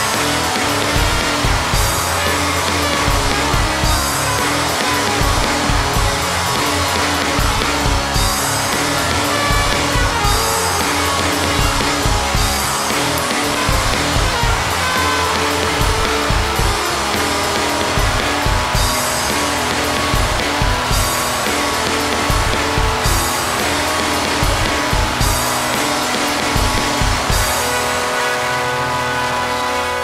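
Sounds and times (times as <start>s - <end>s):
heavy drum beat: 0.0s - 28.2s
distorted guitar: 0.0s - 30.0s.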